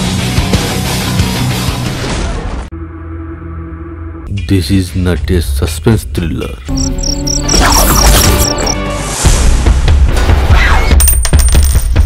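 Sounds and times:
thin high ringing tone: 0:06.7 - 0:08.8.

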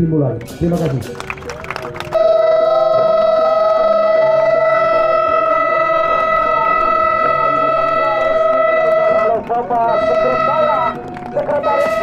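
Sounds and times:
faint music: 0:00.0 - 0:12.0
siren steady pitch: 0:02.0 - 0:12.0.

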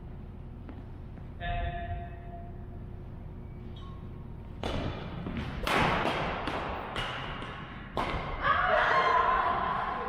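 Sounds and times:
rackets hitting shuttlecock: 0:04.6 - 0:08.4.

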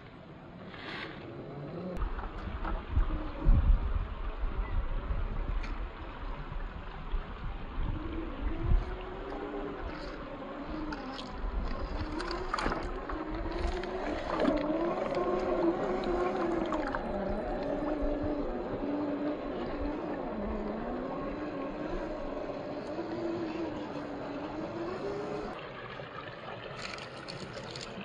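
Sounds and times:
electric motor and gear whine: 0:01.2 - 0:25.6.

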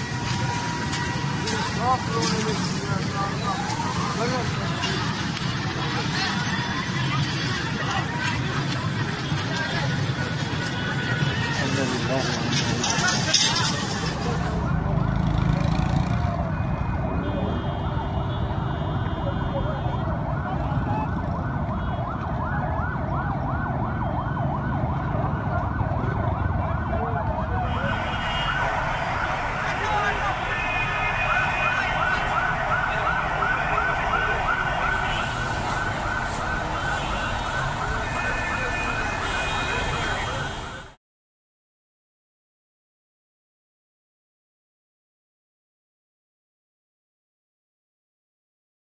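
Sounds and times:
crowd voices: 0:00.0 - 0:23.2, 0:25.4 - 0:41.0
busy street noise: 0:00.0 - 0:41.0
emergency vehicle sirens wailing: 0:00.0 - 0:41.0.

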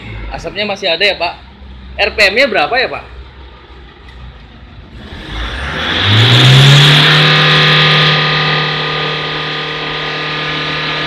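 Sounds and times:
diesel engine revving: 0:00.0 - 0:11.0.

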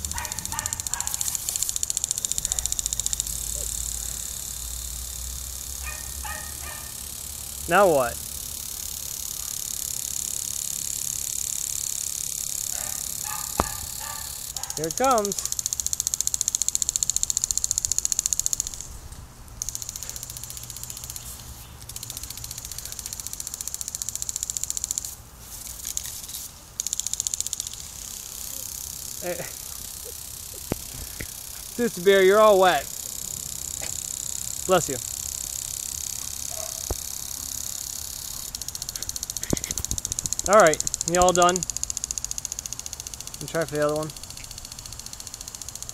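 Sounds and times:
sprinkler head ticking: 0:00.0 - 0:45.9
sprinkler water jet hissing: 0:00.0 - 0:45.9
sharp click: 0:12.8 - 0:14.8, 0:35.9 - 0:37.1, 0:38.2 - 0:43.4.

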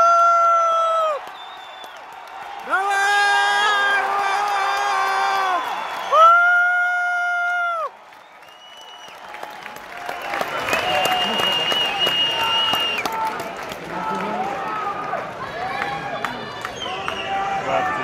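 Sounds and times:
crowd clapping: 0:00.0 - 0:18.0
crowd shouting: 0:02.2 - 0:06.4.

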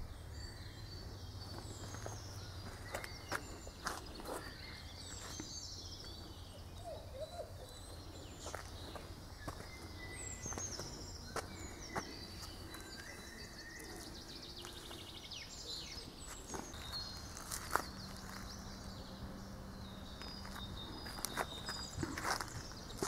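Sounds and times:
songbirds chirping and trilling: 0:00.0 - 0:23.0.

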